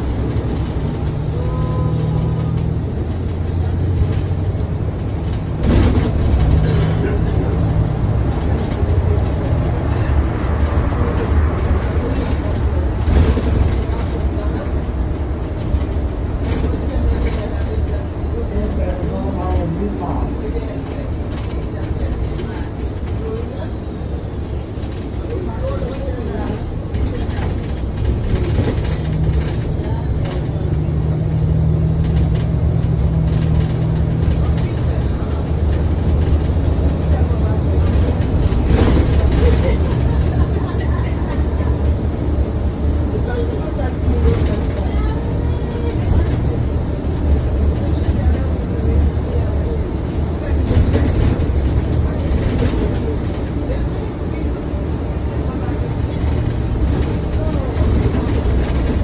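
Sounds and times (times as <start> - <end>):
bus drivetrain and road drone: 0.0 - 59.0.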